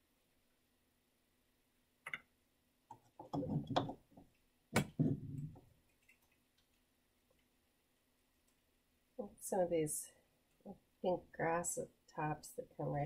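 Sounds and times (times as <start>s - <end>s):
painting tools clicking and knocking: 2.9s - 6.4s.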